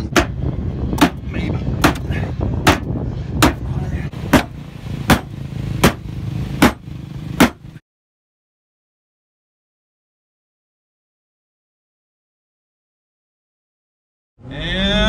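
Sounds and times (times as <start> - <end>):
hammer striking sheet steel: 4.3 - 6.0, 7.4 - 7.6.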